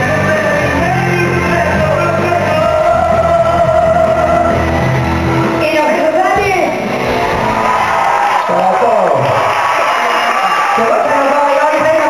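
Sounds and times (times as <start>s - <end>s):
band playing live music: 0.0s - 9.6s
crowd cheering and whooping: 6.8s - 12.0s.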